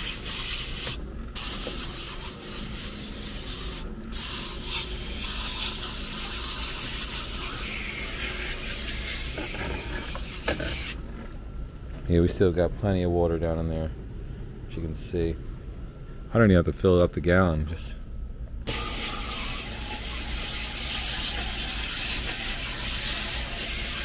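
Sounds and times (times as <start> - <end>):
hiss of water spray: 18.7 - 24.0.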